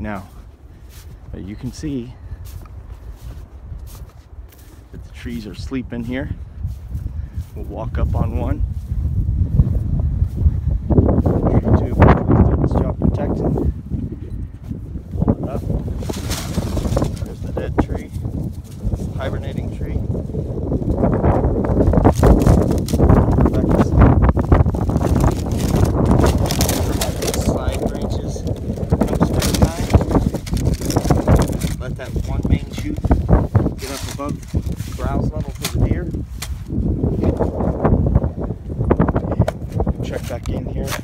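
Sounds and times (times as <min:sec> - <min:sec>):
man speaking: 0:00.0 - 0:00.4, 0:01.3 - 0:02.2, 0:05.0 - 0:06.4, 0:07.5 - 0:08.6, 0:11.4 - 0:13.7, 0:16.5 - 0:18.2, 0:19.0 - 0:20.0, 0:26.8 - 0:30.0, 0:31.8 - 0:33.1, 0:33.8 - 0:36.2
footsteps crunching through snow: 0:00.0 - 0:12.5, 0:13.4 - 0:37.7
wind buffeting microphone: 0:00.0 - 0:41.0
low rumbling: 0:04.8 - 0:40.0.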